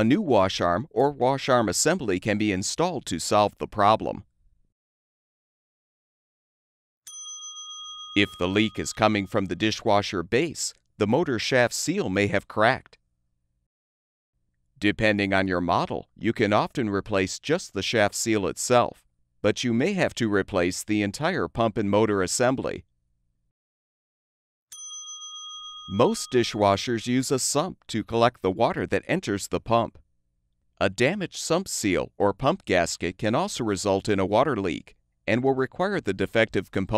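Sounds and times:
bell-like chime: 7.1s - 9.4s, 24.7s - 26.6s.

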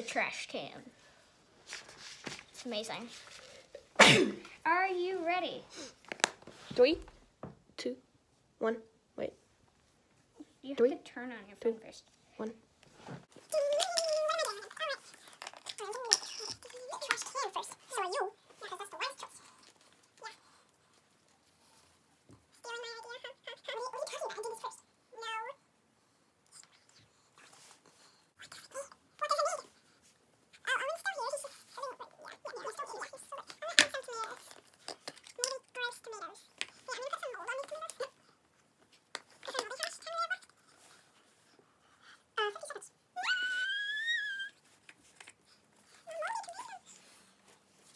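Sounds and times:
child vocalising and squealing: 13.5s - 18.0s, 42.4s - 44.8s, 46.0s - 47.0s
child making wordless vocal sounds: 22.6s - 25.6s, 28.4s - 29.8s, 30.6s - 34.5s, 35.4s - 38.2s, 42.3s - 44.6s, 46.0s - 47.1s.

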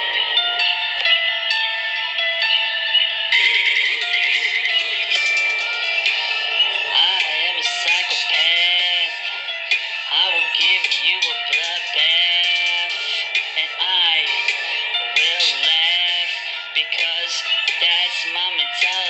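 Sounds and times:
man singing over rap song: 4.0s - 19.0s.

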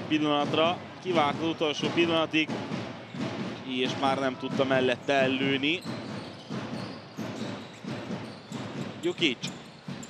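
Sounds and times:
indoor sports hall noise: 0.0s - 10.0s.

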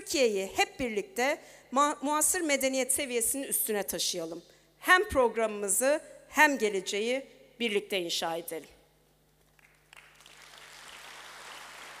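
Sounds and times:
audience applause in a large hall: 9.4s - 12.0s.

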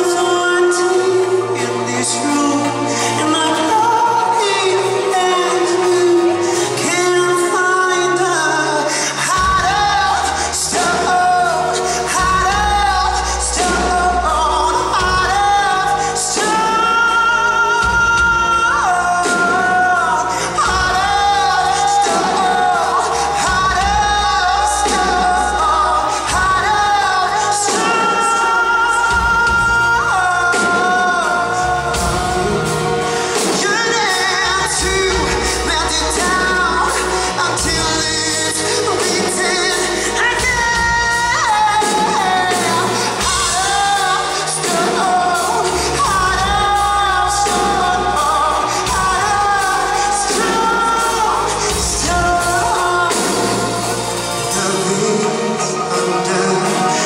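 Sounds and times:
band playing: 0.0s - 57.0s
drums: 0.0s - 57.0s
man singing into microphone: 0.0s - 57.0s.

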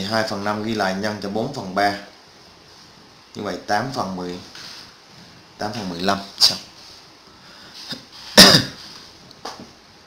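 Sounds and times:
man clearing his throat: 8.4s - 8.8s.

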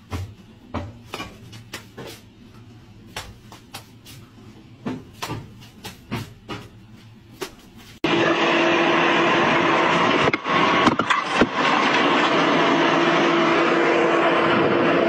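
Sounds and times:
loud mechanical drone: 8.0s - 15.0s.

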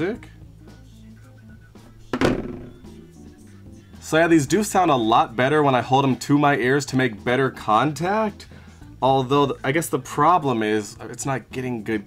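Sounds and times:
quiet music with low notes: 0.0s - 12.0s
phone set down on desk: 2.1s - 3.0s.

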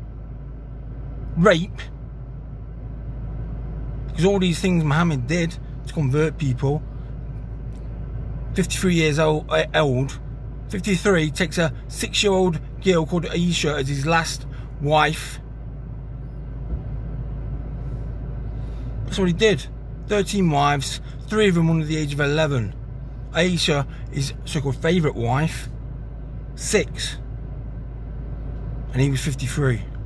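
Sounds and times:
car cabin rumble with hiss: 0.0s - 30.0s
low bump: 16.5s - 17.2s.

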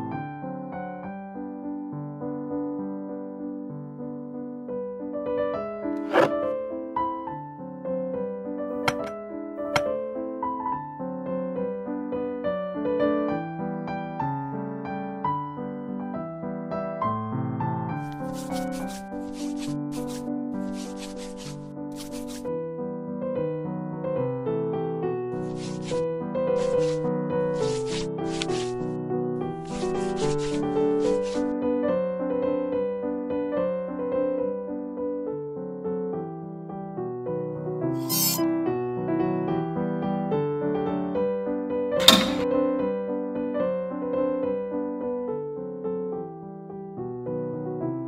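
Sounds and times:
gentle piano music: 0.0s - 48.0s
brief rustling: 6.0s - 6.5s, 18.1s - 22.4s, 38.0s - 38.4s
sharp click: 8.9s - 9.1s, 42.0s - 42.5s
fingers rubbing pepper: 18.1s - 22.4s, 25.5s - 26.0s, 26.6s - 27.0s, 27.6s - 28.8s, 29.7s - 31.5s.

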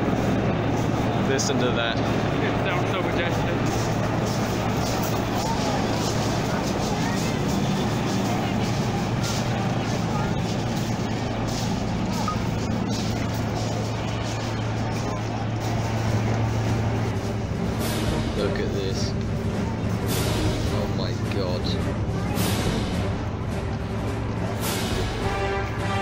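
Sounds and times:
helicopters flying overhead: 0.0s - 26.0s.

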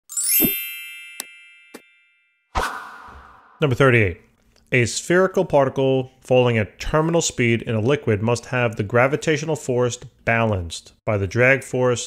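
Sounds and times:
bright chime with rising sweep: 0.1s - 3.6s.

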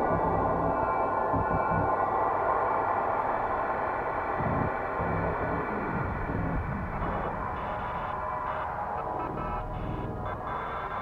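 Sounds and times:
sustained synth drone: 0.0s - 11.0s.

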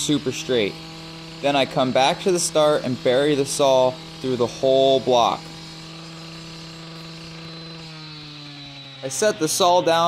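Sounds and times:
cut-off saw cutting concrete: 0.0s - 10.0s.

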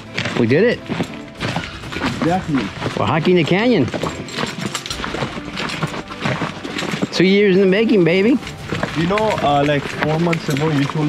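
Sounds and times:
footsteps on gravel trail: 0.0s - 11.0s.

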